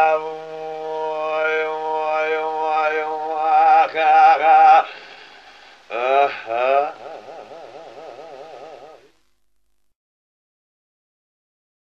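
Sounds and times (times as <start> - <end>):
man singing with vibrato: 0.0 - 9.2.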